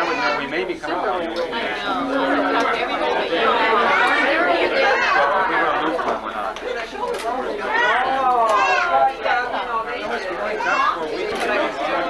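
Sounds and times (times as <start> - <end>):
overlapping conversation: 0.0 - 12.0.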